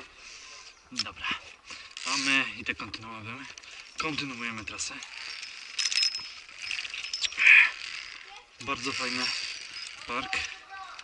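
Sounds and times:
carabiners clinking on steel cable: 0:00.6 - 0:11.0.

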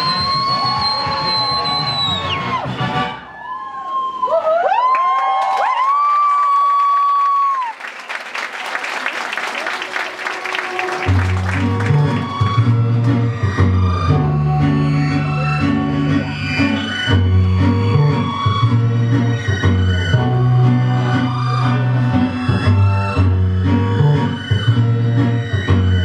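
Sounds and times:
audience whooping and cheering: 0:00.0 - 0:13.0
applause: 0:03.8 - 0:12.6
show music: 0:09.8 - 0:26.0
music with bass and guitar: 0:11.4 - 0:26.0.

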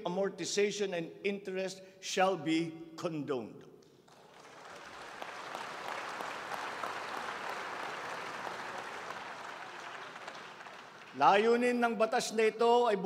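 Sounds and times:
audience applauding: 0:04.1 - 0:11.2.

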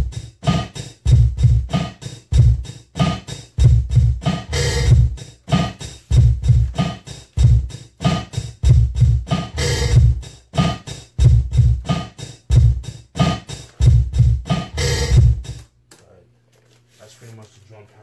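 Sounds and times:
hip-hop drum pattern: 0:00.0 - 0:15.7.

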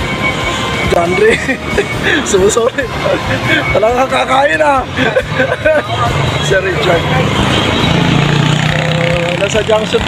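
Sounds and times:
vehicle engines droning: 0:00.0 - 0:10.0.

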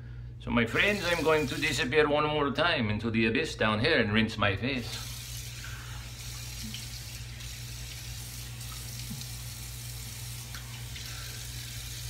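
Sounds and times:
tap water running into sink: 0:00.7 - 0:01.8, 0:04.9 - 0:12.0.

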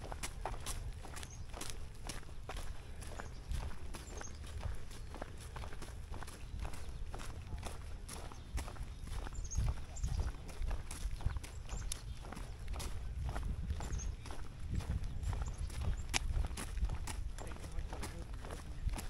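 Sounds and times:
footsteps crunching on gravel path: 0:00.0 - 0:19.0.

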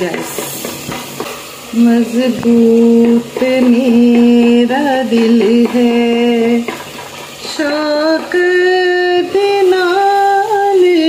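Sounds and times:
light frying sizzle: 0:00.0 - 0:11.0.

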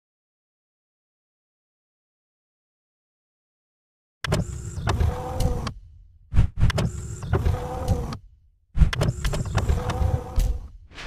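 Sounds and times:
mechanical sliding whoosh: 0:08.8 - 0:11.0.

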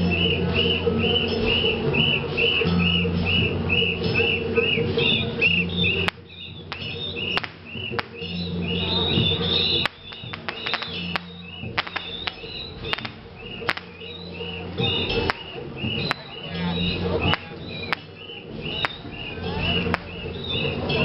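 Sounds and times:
low droning tone: 0:00.0 - 0:21.0
rapid high chirping: 0:00.1 - 0:21.0
sharp pops: 0:06.0 - 0:08.4, 0:09.7 - 0:14.1, 0:17.2 - 0:19.1, 0:19.9 - 0:20.3.

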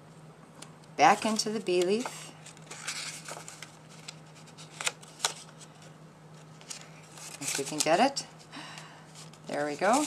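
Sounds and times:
paper rustling and crackling: 0:01.2 - 0:08.2, 0:09.1 - 0:10.0.

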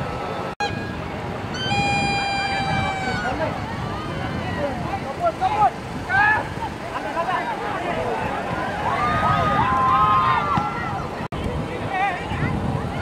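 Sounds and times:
crowd shouting and chattering: 0:00.0 - 0:13.0
long high held note: 0:00.6 - 0:03.4.

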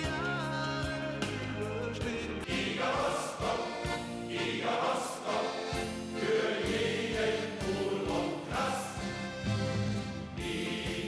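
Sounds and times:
accordions: 0:00.0 - 0:11.0
guitar: 0:00.0 - 0:11.0
male choir singing: 0:01.2 - 0:11.0.

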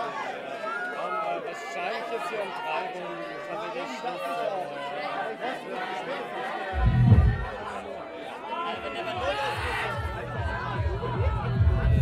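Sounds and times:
voices talking over one another: 0:01.3 - 0:12.0
deep boom: 0:06.8 - 0:07.6.

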